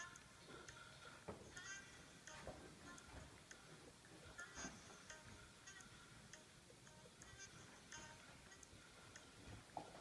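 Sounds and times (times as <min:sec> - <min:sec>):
faint light ticks: 0:05.1 - 0:09.9.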